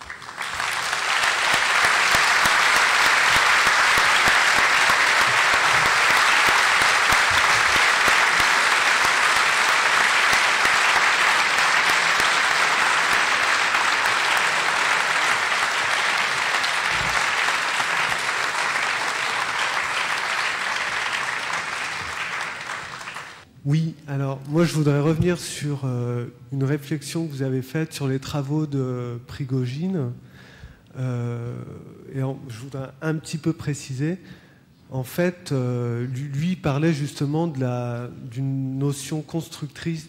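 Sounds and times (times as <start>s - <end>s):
audience applauding: 0.0s - 23.4s.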